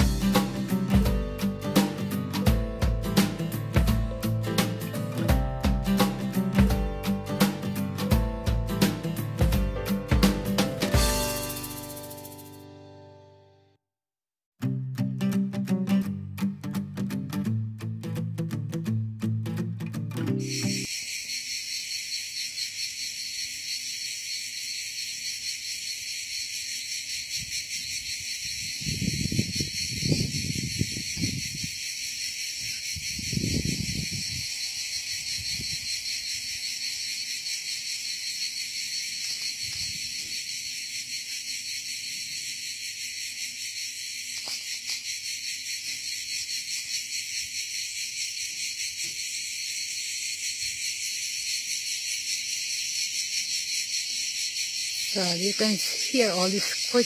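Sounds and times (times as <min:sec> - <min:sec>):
crickets chirping: 0:00.0 - 0:02.4, 0:10.8 - 0:12.6, 0:20.4 - 0:57.0.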